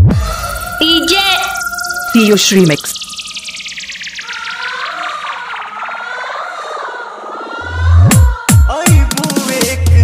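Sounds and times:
siren-like synth tone: 0:00.0 - 0:08.0.

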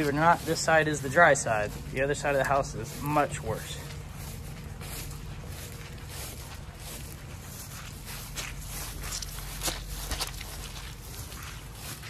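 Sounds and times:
footsteps on squishy wet lawn: 0:00.0 - 0:12.0
steady low rumble: 0:00.0 - 0:12.0.

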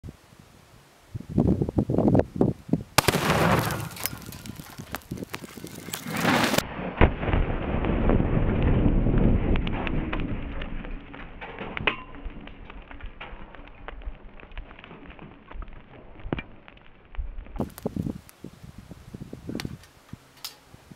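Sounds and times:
explosive blast: 0:03.0 - 0:05.1, 0:06.2 - 0:11.2
scattered cracks: 0:03.0 - 0:18.4
deep rumble: 0:06.6 - 0:17.7.

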